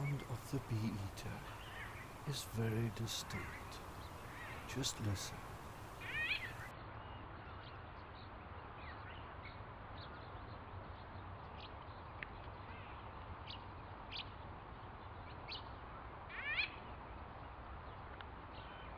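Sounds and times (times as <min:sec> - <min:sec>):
bird calling: 0:00.0 - 0:06.7
low background noise: 0:00.0 - 0:18.9.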